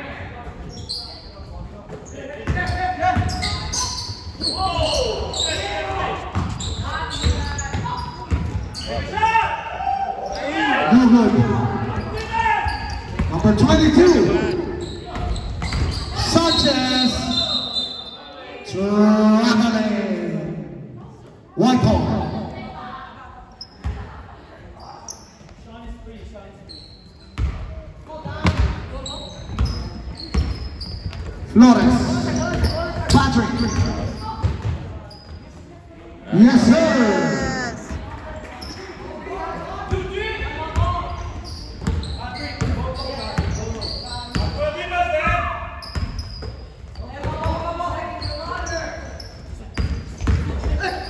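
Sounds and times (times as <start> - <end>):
people shouting: 36.6 - 37.9.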